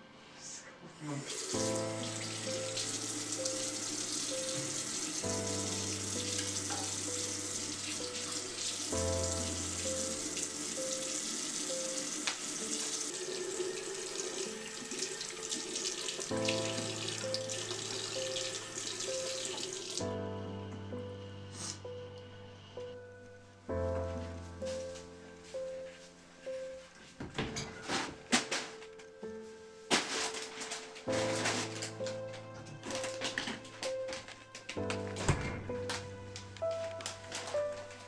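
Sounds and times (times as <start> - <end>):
tap water running into sink: 1.3 - 20.0
slow chord music: 1.4 - 27.1, 28.9 - 38.0.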